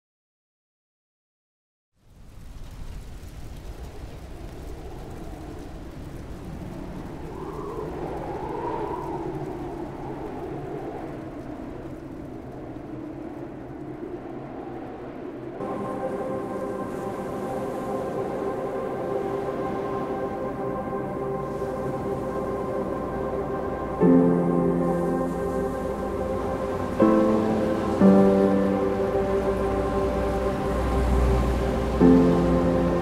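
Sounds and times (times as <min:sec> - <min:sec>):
low rumbling drone: 0:15.6 - 0:33.0
sustained chord: 0:15.6 - 0:33.0.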